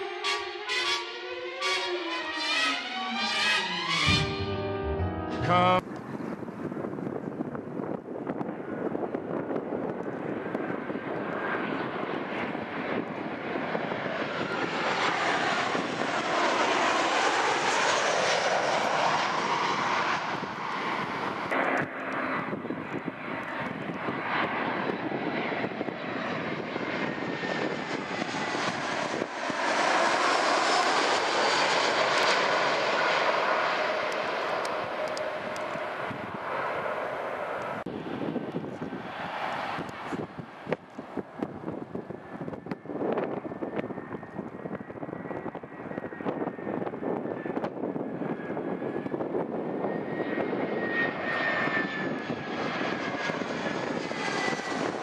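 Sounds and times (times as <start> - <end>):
jet airliner passing overhead: 0.0 - 55.0.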